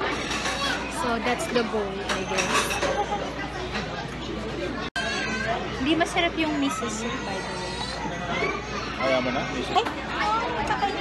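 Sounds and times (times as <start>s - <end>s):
restaurant chatter: 0.0s - 11.0s.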